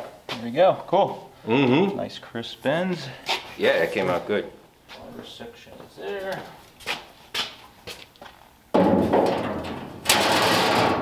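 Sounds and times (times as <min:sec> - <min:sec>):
loud metal clatter: 0:08.8 - 0:11.0
harsh metal scraping rattle: 0:09.0 - 0:11.0.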